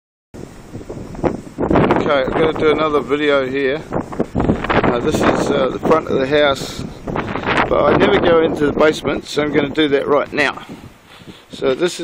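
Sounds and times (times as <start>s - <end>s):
wind buffeting microphone: 0.4s - 12.0s.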